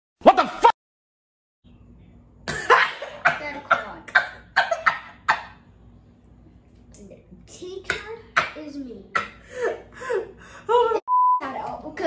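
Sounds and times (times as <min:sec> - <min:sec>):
person coughing harshly: 0:02.5 - 0:05.1.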